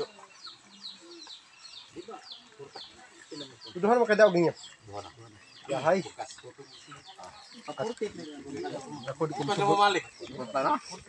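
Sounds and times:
chickens clucking and peeping: 0.0s - 11.0s.

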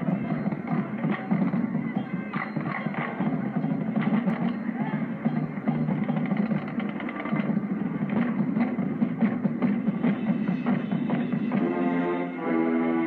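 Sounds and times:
drum beat: 0.0s - 12.0s
marching band brass: 0.0s - 13.0s.

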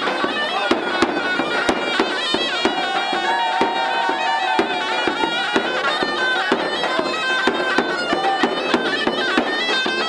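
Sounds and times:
shawm melody: 0.0s - 10.0s.

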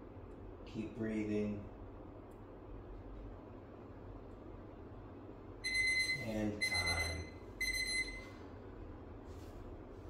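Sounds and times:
phone timer alarm beeping: 5.6s - 8.4s.

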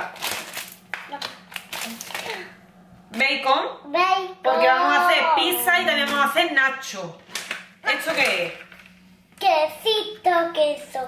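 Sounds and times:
plastic packaging crinkling: 0.0s - 2.5s.

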